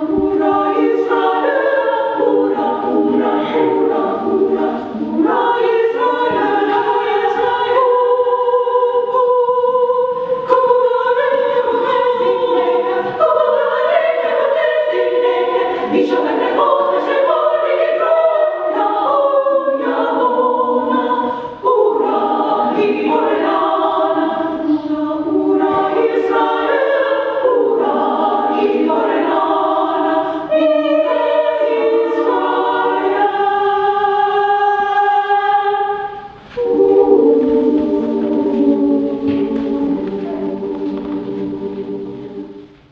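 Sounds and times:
choir singing: 0:00.0 - 0:42.9.

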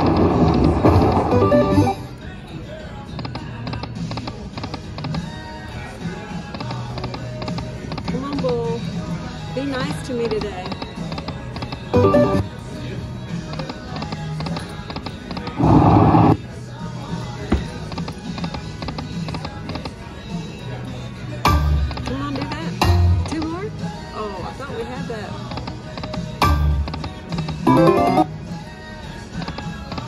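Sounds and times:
casino chatter: 0:00.0 - 0:28.3
slot machine spin sounds and music: 0:00.1 - 0:02.2, 0:11.9 - 0:12.6, 0:27.6 - 0:28.4.

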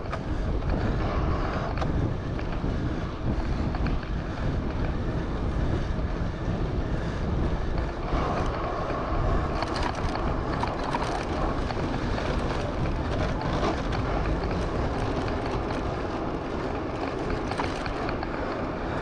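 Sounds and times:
road noise: 0:00.0 - 0:19.0
wind rumbling on microphone: 0:00.0 - 0:19.0.

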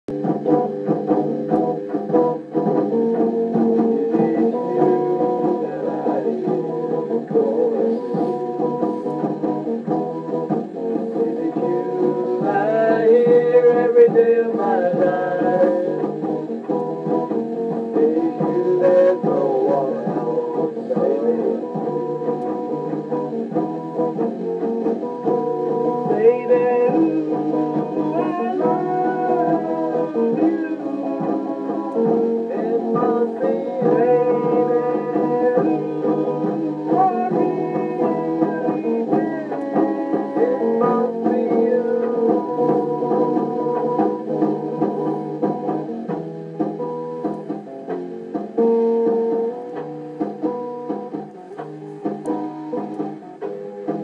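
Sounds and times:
person singing: 0:00.1 - 0:46.2
guitar-led song on tape: 0:00.1 - 0:54.0.

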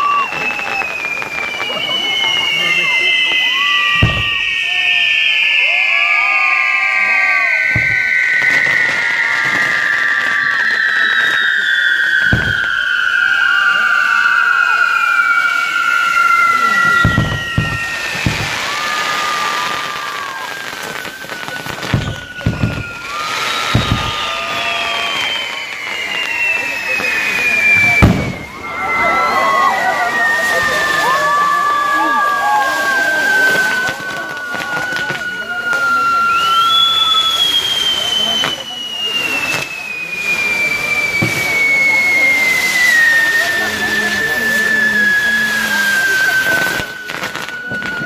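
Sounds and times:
firework bangs: 0:00.0 - 0:48.0
fireworks whistling: 0:00.0 - 0:48.0.

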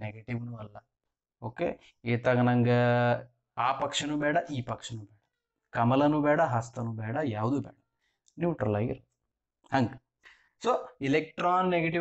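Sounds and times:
man speaking: 0:00.0 - 0:00.8, 0:01.4 - 0:05.1, 0:05.8 - 0:07.8, 0:09.7 - 0:10.0.

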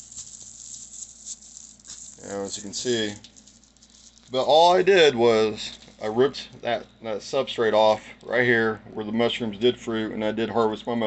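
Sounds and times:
plastic bag crinkling: 0:00.0 - 0:06.1.

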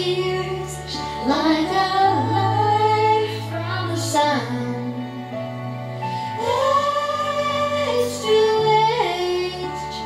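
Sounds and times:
girl singing: 0:00.0 - 0:05.2, 0:06.4 - 0:10.0
instrumental accompaniment: 0:00.0 - 0:10.0.

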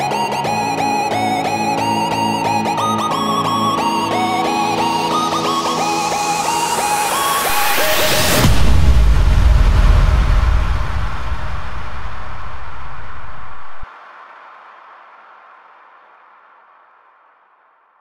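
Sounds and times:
deep low rumble: 0:08.4 - 0:13.9
white noise wash: 0:09.8 - 0:16.1.

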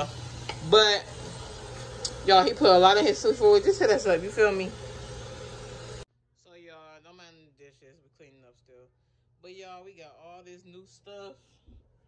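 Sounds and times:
low hum: 0:00.0 - 0:06.1.

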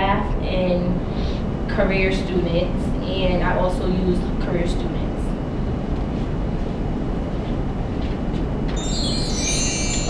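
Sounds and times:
classroom room noise rumble: 0:00.0 - 0:10.0
shimmering chime: 0:08.8 - 0:10.0.

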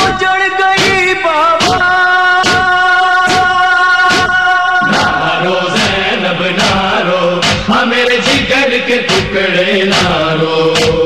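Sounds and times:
steady beat: 0:00.8 - 0:11.0
male chorus chanting: 0:01.5 - 0:11.0.

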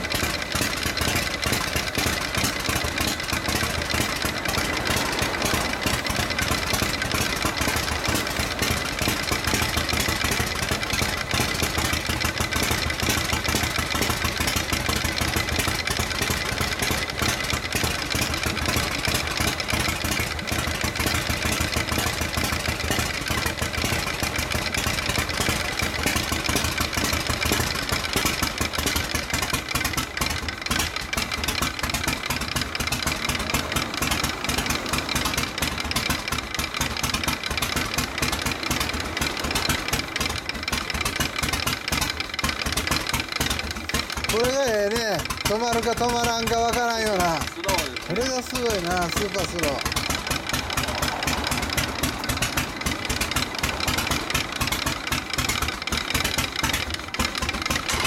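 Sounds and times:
motorcycle engine idling slowly: 0:00.0 - 0:58.0.

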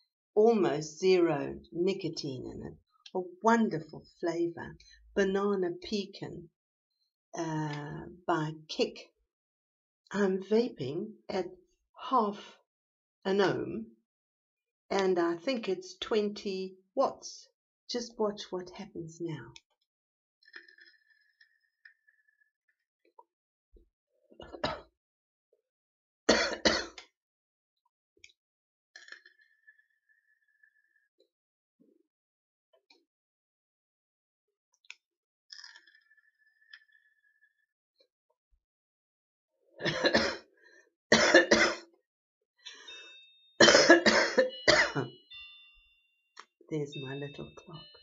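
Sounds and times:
woman clearing throat: 0:24.4 - 0:24.9, 0:26.3 - 0:27.0, 0:39.8 - 0:40.4, 0:41.1 - 0:41.9, 0:43.6 - 0:45.1
woman coughing: 0:24.4 - 0:24.9, 0:26.3 - 0:27.0, 0:39.8 - 0:40.5, 0:41.1 - 0:41.9, 0:43.6 - 0:45.2.

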